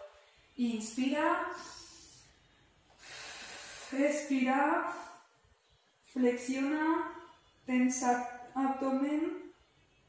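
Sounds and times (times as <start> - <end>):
woman breathing in: 1.6 - 4.1.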